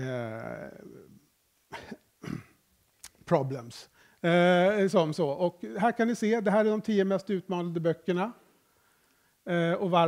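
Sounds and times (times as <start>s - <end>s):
person coughing: 1.7s - 2.6s.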